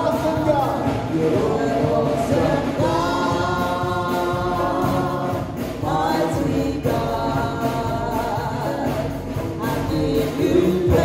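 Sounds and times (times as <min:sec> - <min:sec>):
choir voices: 0:00.0 - 0:11.0
man singing into a microphone: 0:00.0 - 0:11.0
musical accompaniment: 0:00.0 - 0:11.0.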